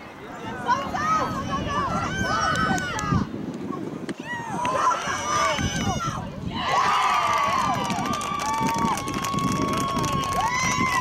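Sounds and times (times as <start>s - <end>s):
spectators shouting and cheering: 0.2s - 3.3s, 4.1s - 11.0s.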